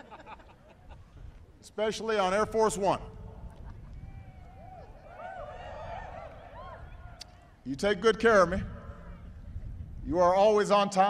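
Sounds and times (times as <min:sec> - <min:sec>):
crowd laughing: 0:00.0 - 0:01.4, 0:03.4 - 0:04.0.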